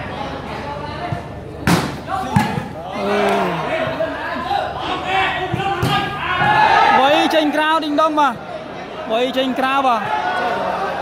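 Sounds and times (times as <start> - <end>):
crowd chatter: 0.0 - 11.0
volleyball struck by hand: 1.6 - 2.8.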